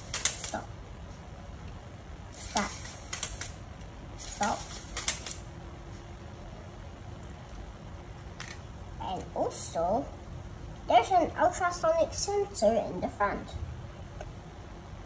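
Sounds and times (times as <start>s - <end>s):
faint motor hum: 0.0s - 15.0s.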